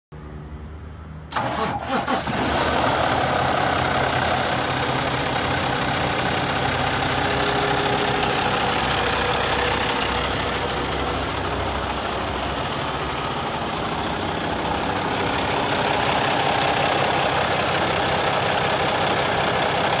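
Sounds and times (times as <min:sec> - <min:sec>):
diesel engine idling: 0:01.2 - 0:20.0.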